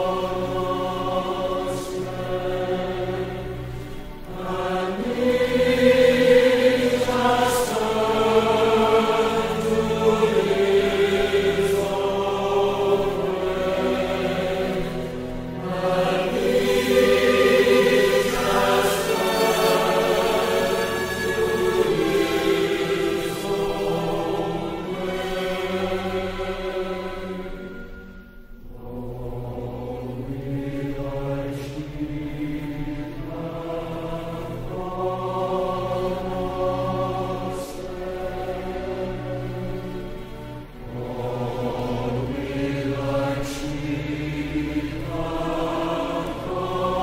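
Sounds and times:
choir singing sacred music: 0.0s - 47.0s.

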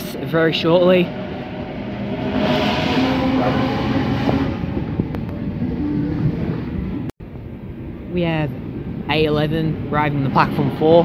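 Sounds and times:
electric train pulling out: 0.0s - 7.1s.

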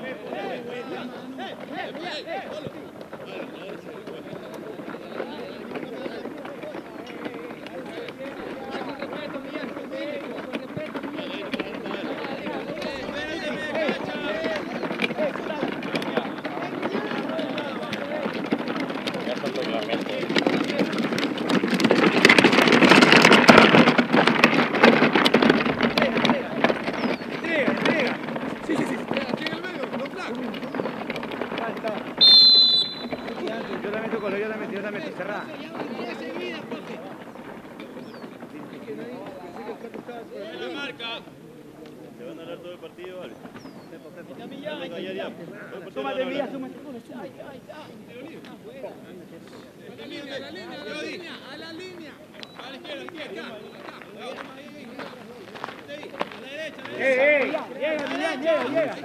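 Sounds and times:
referee's whistle blast: 32.2s - 33.2s.

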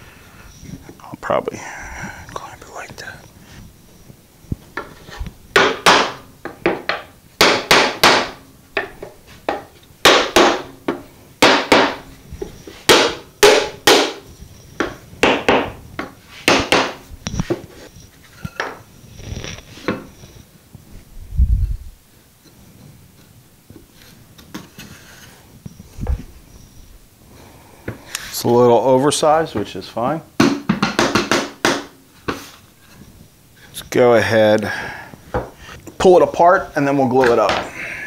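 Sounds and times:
mallet knocking on plywood: 5.6s - 12.0s, 12.9s - 14.2s, 14.8s - 17.0s, 30.4s - 31.9s.

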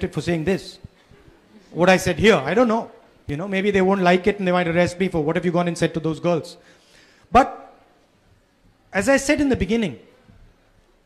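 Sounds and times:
man speaking into microphone: 0.0s - 0.9s, 1.7s - 6.6s, 8.9s - 10.0s.

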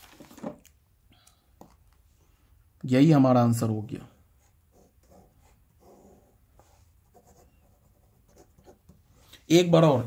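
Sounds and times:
pen scratching on paper: 4.4s - 9.0s.

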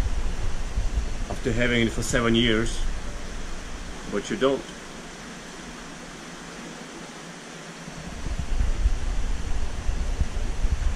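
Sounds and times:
low rumble on microphone: 0.0s - 6.1s, 7.9s - 10.9s
aquarium water hissing: 0.0s - 10.9s.

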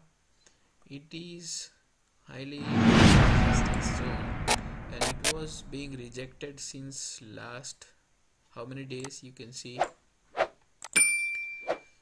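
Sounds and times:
bell ding: 11.0s - 11.9s.

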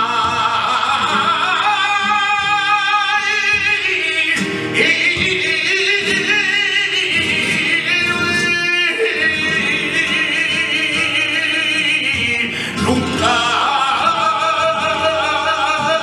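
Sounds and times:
flamenco guitar: 0.0s - 16.0s
man singing flamenco: 0.0s - 16.0s.

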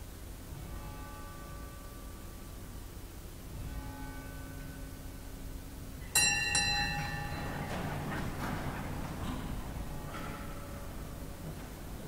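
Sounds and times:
small metal bell ringing: 6.0s - 8.1s.

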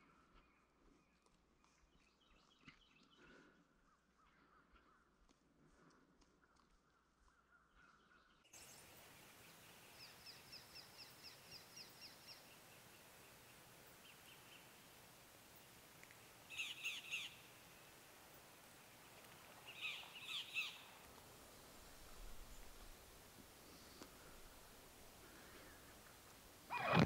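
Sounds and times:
harsh bird calls: 8.6s - 18.2s, 19.0s - 21.0s, 23.6s - 27.0s
low hiss: 8.6s - 27.0s
bird trill: 16.5s - 17.5s
high bird chirps: 16.5s - 17.5s.

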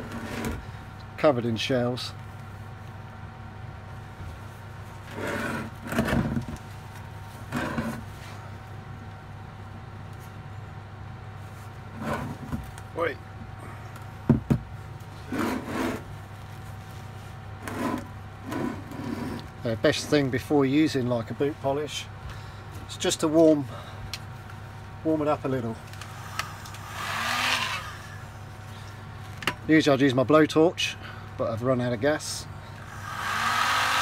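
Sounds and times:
steady low hum: 0.0s - 34.0s
stone scraping on wooden bench: 7.5s - 8.0s, 15.3s - 16.0s, 17.6s - 19.4s.

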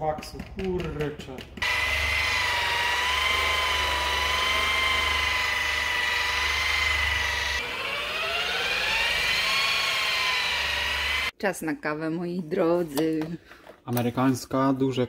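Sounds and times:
rotary polisher motor whine: 1.6s - 11.3s.

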